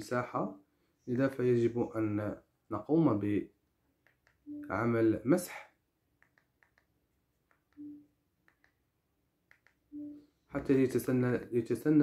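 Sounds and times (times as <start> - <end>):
faint sharp clicks: 6.2 - 8.9, 9.5 - 9.9.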